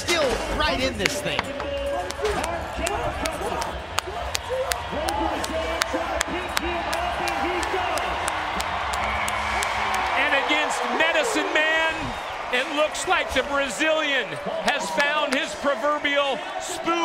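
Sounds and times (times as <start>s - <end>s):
crowd whooping and cheering: 1.3s - 17.0s.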